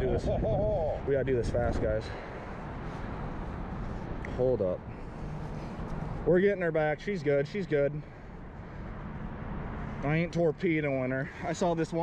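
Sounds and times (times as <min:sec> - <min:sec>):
outdoor background rush: 0:00.0 - 0:12.0.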